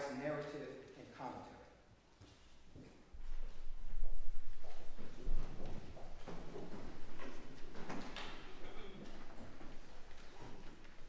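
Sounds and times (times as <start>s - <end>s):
people shuffling and knocking: 2.1s - 11.0s.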